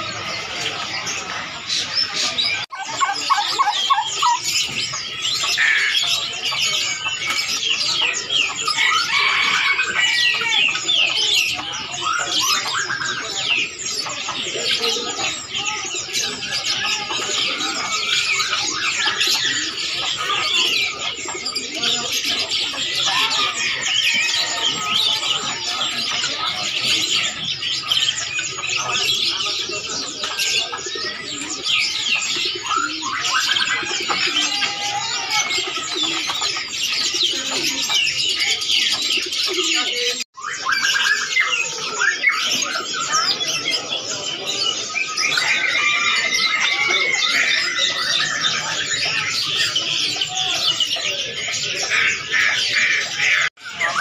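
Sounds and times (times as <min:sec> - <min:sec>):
caged birds chirping and twittering: 0:00.0 - 0:54.0.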